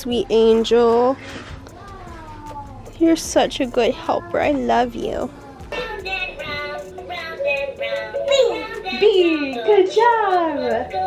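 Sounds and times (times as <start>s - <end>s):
high singing voice: 5.3s - 11.0s.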